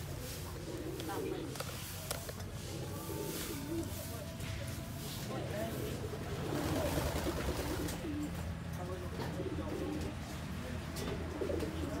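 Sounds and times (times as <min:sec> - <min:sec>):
birds cooing: 0:00.1 - 0:04.2, 0:05.8 - 0:10.4, 0:11.0 - 0:12.0.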